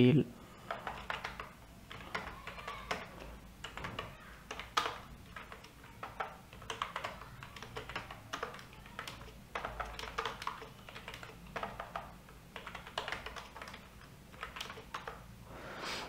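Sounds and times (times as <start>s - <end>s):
computer keyboard typing: 0.5s - 15.4s.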